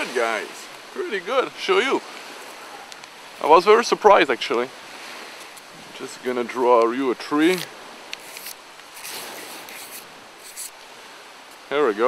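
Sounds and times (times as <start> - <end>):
background hiss: 0.0 - 12.0
charcoal scratching on paper: 8.2 - 10.7.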